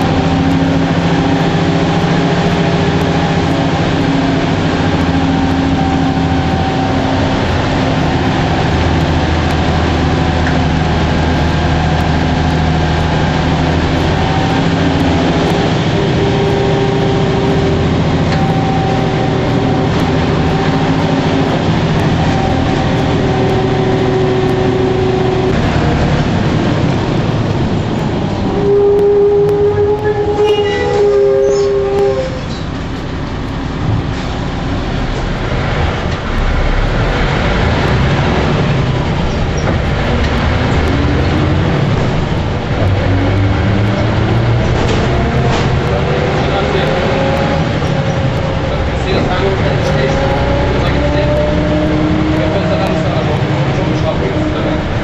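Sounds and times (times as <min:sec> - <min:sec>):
bus engine and road rumble: 0:00.0 - 0:55.0
drivetrain whine: 0:00.0 - 0:55.0.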